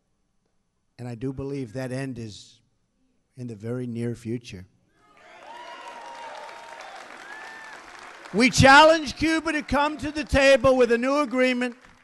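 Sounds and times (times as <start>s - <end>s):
audience applauding: 5.2s - 12.0s.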